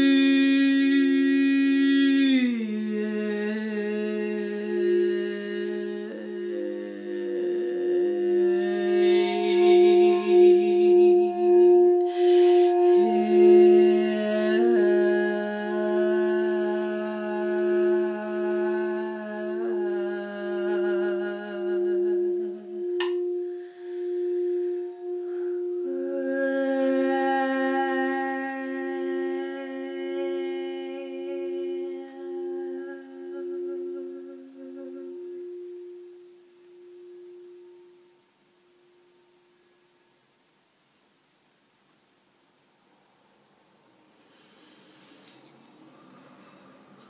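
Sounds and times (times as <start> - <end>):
person humming: 0.0 - 38.2
woman singing long notes: 0.0 - 39.6
crystal singing bowl tone: 0.0 - 40.2.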